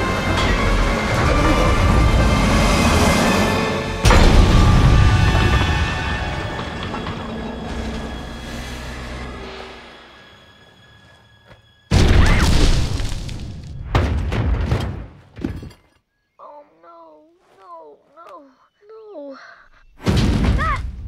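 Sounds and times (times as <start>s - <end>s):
heavy crashing rumble: 0.0s - 10.1s
loud metal crash: 0.0s - 10.1s.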